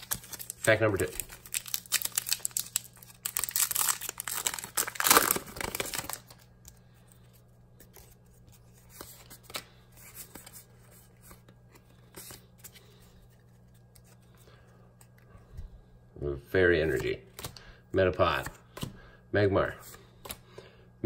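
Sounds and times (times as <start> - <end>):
foil wrapper tearing and crinkling: 0.0 - 6.4.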